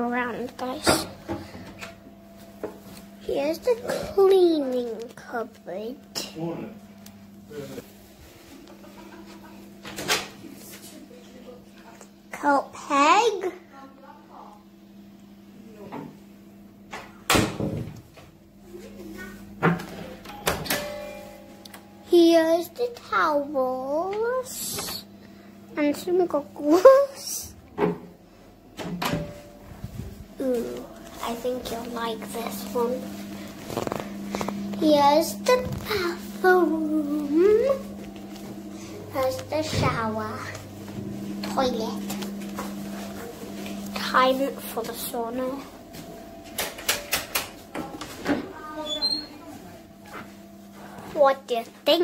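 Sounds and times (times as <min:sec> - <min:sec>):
clear ringing tone: 0:20.2 - 0:22.1
sharp clicks and knocks: 0:46.6 - 0:47.8.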